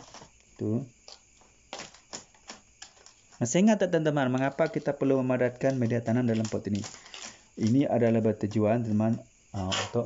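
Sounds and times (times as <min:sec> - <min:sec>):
metal spoon tapping soil: 0:00.0 - 0:10.0.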